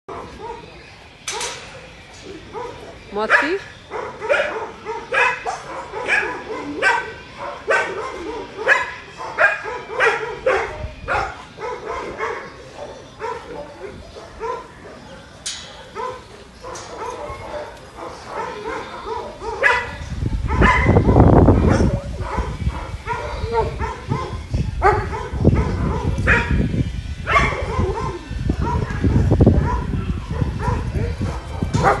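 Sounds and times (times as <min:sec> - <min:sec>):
dog barking: 0:00.1 - 0:01.6, 0:02.5 - 0:15.0, 0:15.7 - 0:26.7, 0:27.3 - 0:32.0
low rumbling on microphone: 0:19.1 - 0:32.0.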